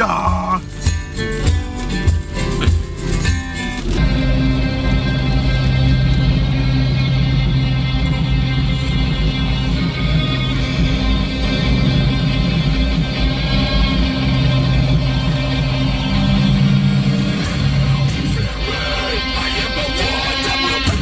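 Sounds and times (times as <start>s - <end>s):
driver singing along: 0.0s - 0.6s, 18.2s - 21.0s
pop song on car stereo: 0.0s - 4.5s, 5.3s - 21.0s.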